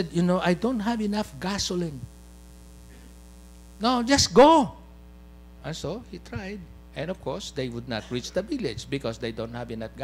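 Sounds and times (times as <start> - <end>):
man speaking: 0.0 - 2.1, 3.8 - 4.9
electrical mains hum: 0.0 - 10.0.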